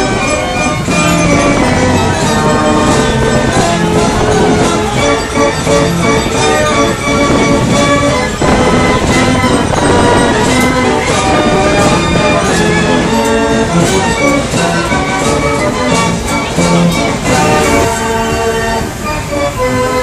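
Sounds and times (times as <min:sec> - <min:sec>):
fairground organ playing a tune: 0:00.0 - 0:20.0.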